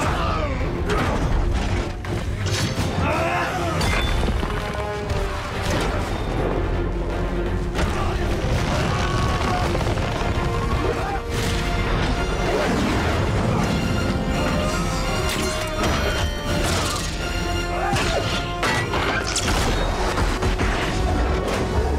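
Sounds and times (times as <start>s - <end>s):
action film score music: 0.0s - 21.9s.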